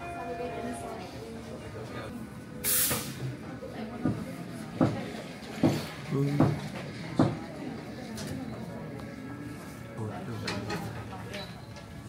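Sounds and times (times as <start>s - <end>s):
cafe chatter: 0.0s - 12.0s.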